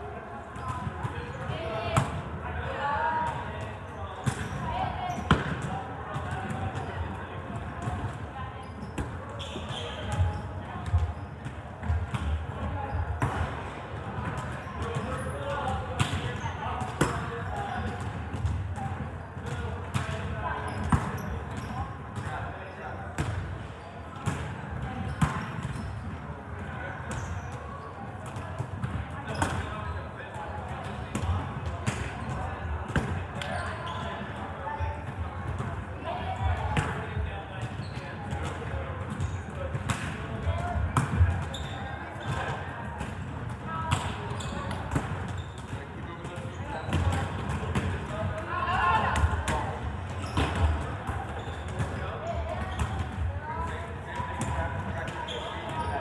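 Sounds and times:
chatter of many players: 0:00.0 - 0:56.0
volleyballs smacking and bouncing: 0:36.6 - 0:55.8.

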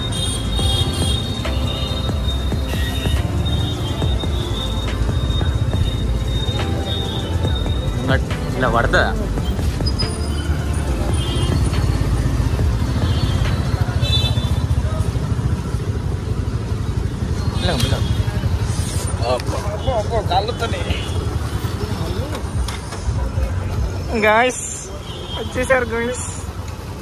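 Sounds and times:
high beeps: 0:01.2 - 0:08.5.

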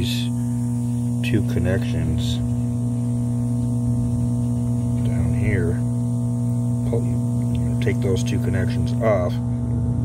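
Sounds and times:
air pump humming: 0:00.0 - 0:10.0.

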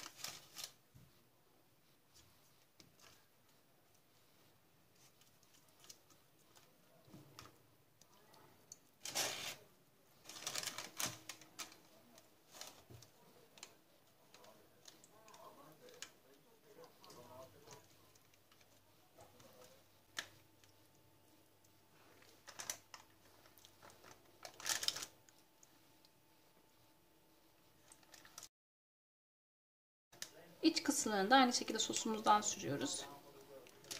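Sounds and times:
baking paper crinkling: 0:00.0 - 0:01.2, 0:01.8 - 0:28.5, 0:31.8 - 0:33.9.

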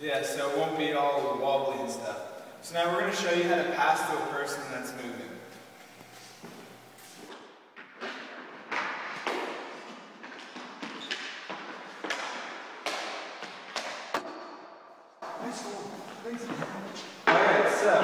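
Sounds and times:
hockey puck clacking off sticks: 0:07.8 - 0:14.6.

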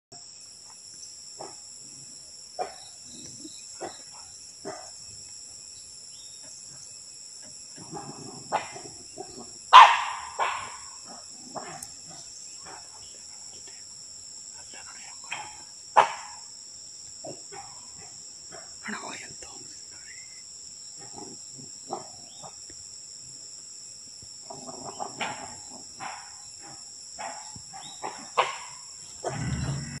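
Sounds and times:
insects chirping: 0:00.1 - 0:30.0
wild dogs yelping: 0:07.8 - 0:13.0, 0:24.4 - 0:30.0.

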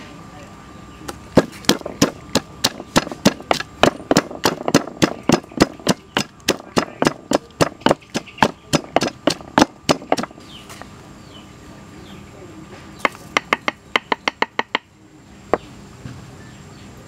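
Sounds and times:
pestle pounding in mortar: 0:01.3 - 0:10.4, 0:13.0 - 0:14.9.

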